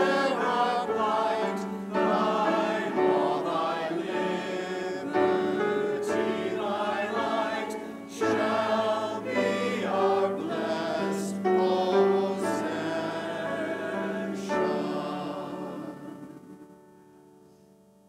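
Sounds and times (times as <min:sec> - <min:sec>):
congregation singing a hymn: 0:00.0 - 0:16.9.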